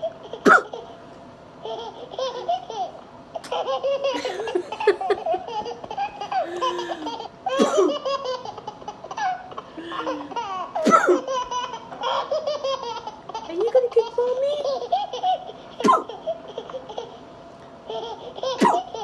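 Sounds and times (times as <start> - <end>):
woman laughing hard: 4.0 - 8.1, 9.8 - 10.4.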